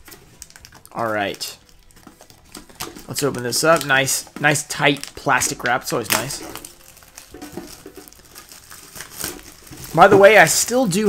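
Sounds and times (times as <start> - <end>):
plastic shrink wrap crinkling: 0.0 - 11.0.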